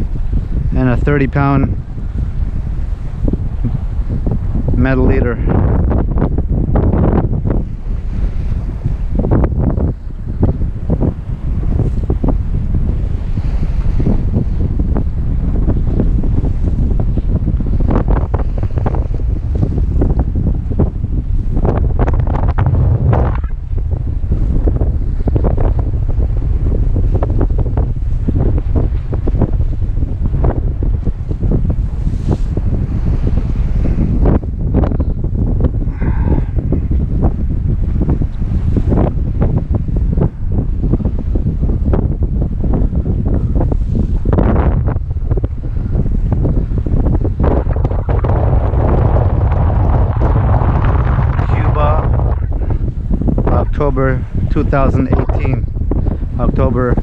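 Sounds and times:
wind buffeting microphone: 0.0s - 57.0s
waves washing against rocks: 46.8s - 57.0s.

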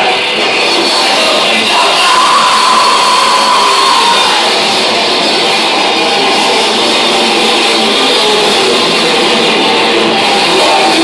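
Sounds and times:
thrash metal band playing live: 0.0s - 11.0s.

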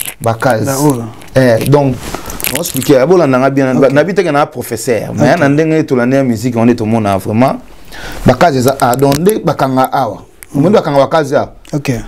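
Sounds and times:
man talking animatedly: 0.2s - 7.6s.

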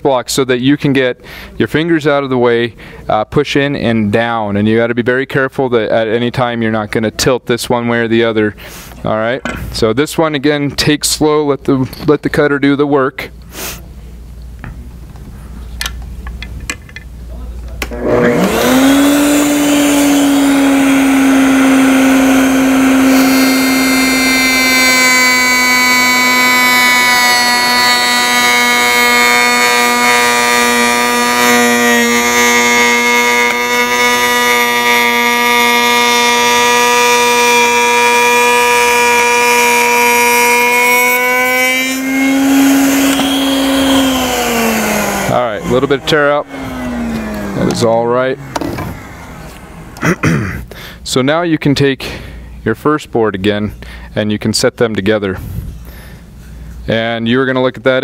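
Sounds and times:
router cutting wood: 17.8s - 50.2s.

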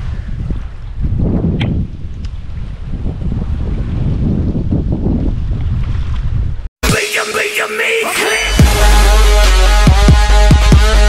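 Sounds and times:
wind buffeting microphone: 0.0s - 6.7s
electronic music: 6.8s - 11.0s.

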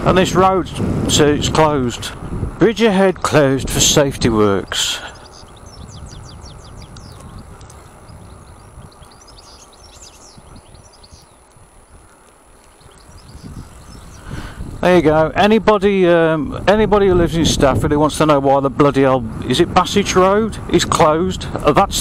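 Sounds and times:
birds chirping faintly: 2.6s - 16.4s
electric bike rolling on road: 5.2s - 14.8s.

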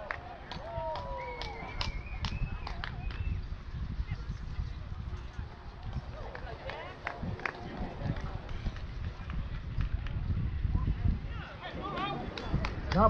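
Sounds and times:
distant indistinct voices: 0.0s - 13.0s
wind rumble on microphone: 0.0s - 13.0s.

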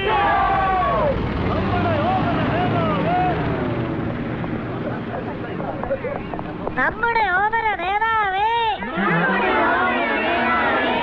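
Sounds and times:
crowd shouting: 0.0s - 3.8s, 8.3s - 11.0s
lorry engine driving past: 0.1s - 5.7s.

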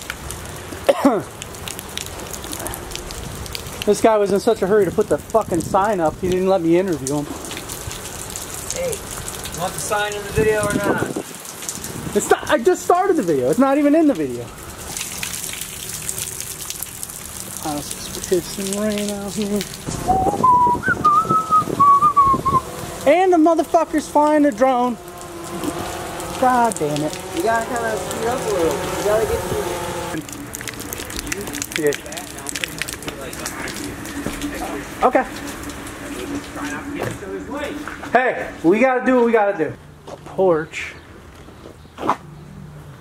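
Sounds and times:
light rain falling: 0.0s - 39.4s
person whistling a tune: 20.0s - 22.6s.

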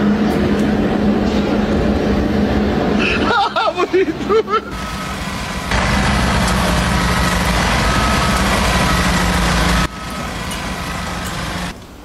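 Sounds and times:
mechanical engine hum: 4.7s - 11.9s.

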